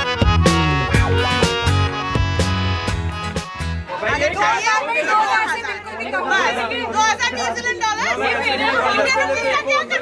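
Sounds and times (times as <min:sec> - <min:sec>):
background music: 0:00.0 - 0:04.6
crowd chatter: 0:00.0 - 0:10.0.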